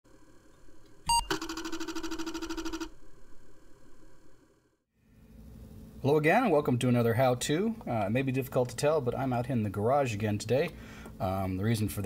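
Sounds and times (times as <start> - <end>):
short electronic beep: 1.1 - 2.0
rattling buzzing tone: 1.1 - 4.6.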